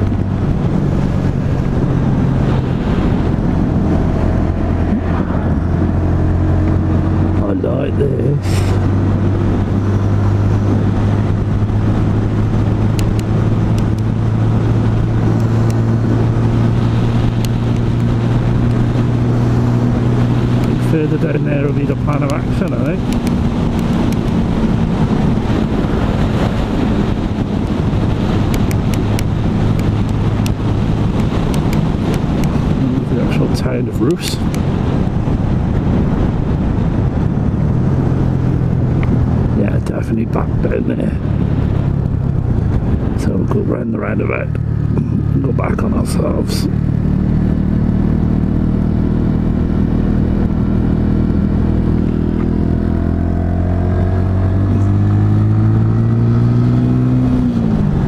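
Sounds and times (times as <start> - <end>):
motorcycle engine cruising: 0.0 - 58.0.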